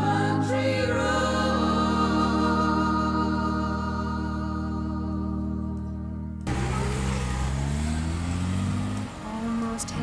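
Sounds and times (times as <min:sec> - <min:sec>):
car engine accelerating: 0:06.4 - 0:10.0.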